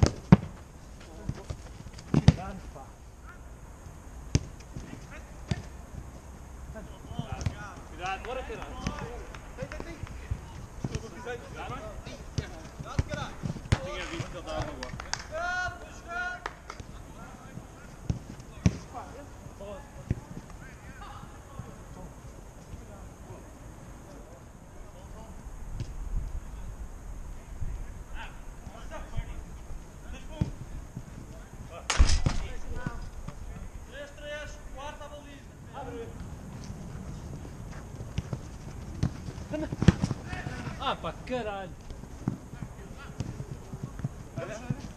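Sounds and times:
football kick thuds: 0.0s - 2.6s, 4.3s - 5.7s, 10.3s - 14.5s, 18.0s - 19.0s, 37.7s - 40.8s
ball touches: 0.0s - 2.7s, 7.1s - 15.1s, 16.8s - 19.1s, 25.8s - 26.0s, 36.2s - 40.9s
players shouting: 39.6s - 41.3s.

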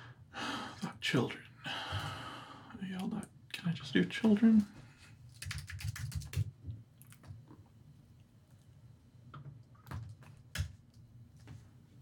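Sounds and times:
typing on a computer keyboard: 5.3s - 6.5s.

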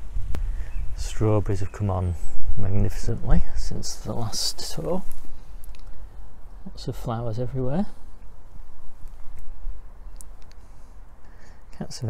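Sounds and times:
faint clicks: 5.1s - 6.0s, 10.1s - 10.6s.

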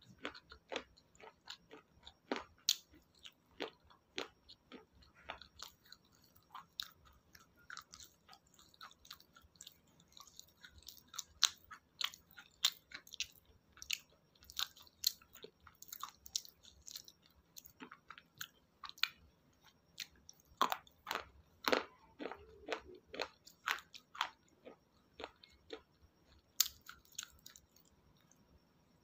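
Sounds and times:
chewing crisp vegetables: 0.0s - 28.4s.

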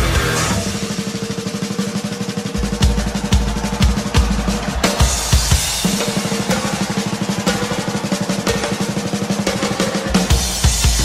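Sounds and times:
fast drum roll: 0.0s - 11.0s.

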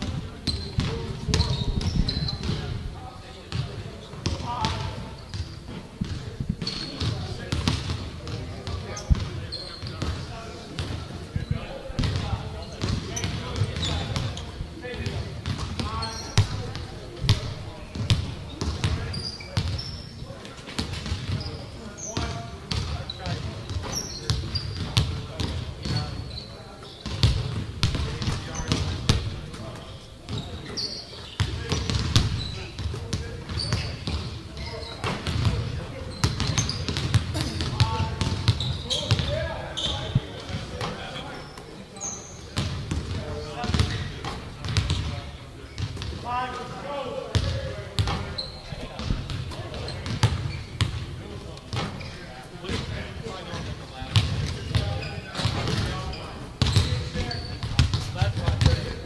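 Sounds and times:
basketballs bouncing on hardwood: 0.0s - 2.7s, 3.5s - 11.0s, 11.9s - 14.4s, 15.0s - 19.8s, 20.7s - 21.5s, 22.2s - 26.2s, 27.0s - 29.6s, 31.4s - 39.4s, 42.6s - 45.1s, 47.3s - 48.3s, 49.0s - 51.0s, 52.7s - 56.0s, 56.6s - 59.0s
sneaker squeaks: 0.0s - 46.7s, 47.3s - 59.0s.

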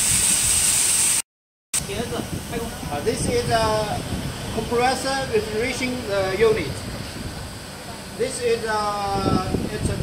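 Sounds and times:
condenser fans and water spray hissing: 0.0s - 1.2s, 1.8s - 10.0s.

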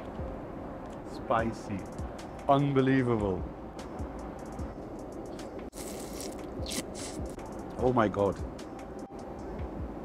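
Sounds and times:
faint background music: 0.0s - 10.0s
slurping noodles: 5.7s - 7.4s.

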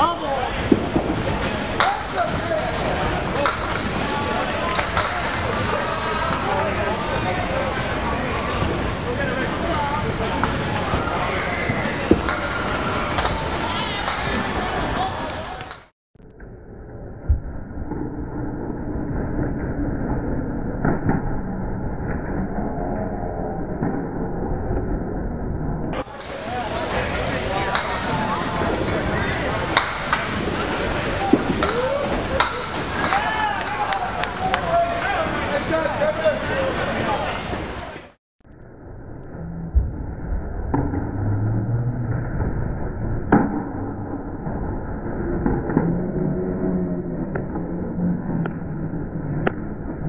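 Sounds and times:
bowling alley background noise: 0.0s - 15.9s, 22.5s - 38.2s.

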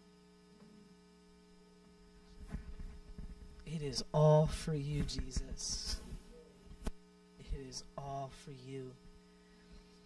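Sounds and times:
quiet steady hum: 0.0s - 10.0s.

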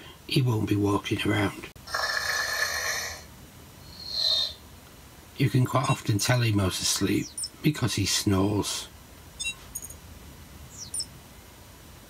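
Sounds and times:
robot electronic snoring: 1.9s - 3.2s.

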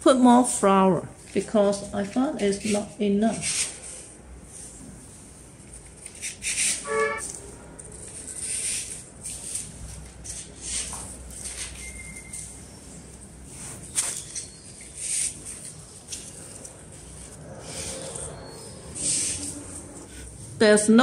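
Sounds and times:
artificial flowers rustling: 1.2s - 20.8s.

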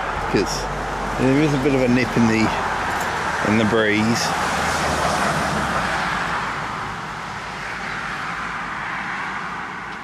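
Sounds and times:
car passing: 0.0s - 10.0s.

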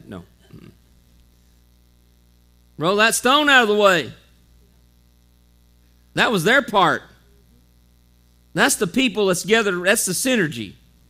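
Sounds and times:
faint mains hum: 0.0s - 11.0s
man speaking loudly: 2.8s - 4.2s, 6.2s - 7.2s, 8.6s - 10.8s.

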